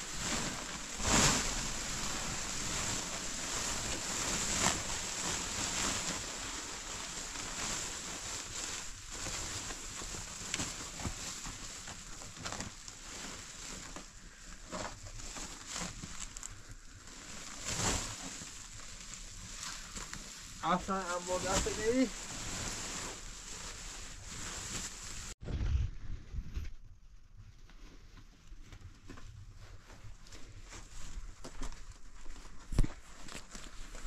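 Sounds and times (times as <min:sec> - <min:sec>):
plastic tarpaulin crinkling: 0:00.0 - 0:25.6, 0:27.5 - 0:34.0
tarpaulin flapping: 0:00.0 - 0:25.8.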